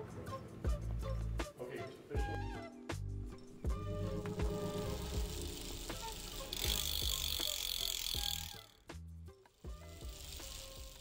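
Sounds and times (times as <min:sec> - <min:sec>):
bicycle freewheel ratcheting: 0:03.7 - 0:11.0.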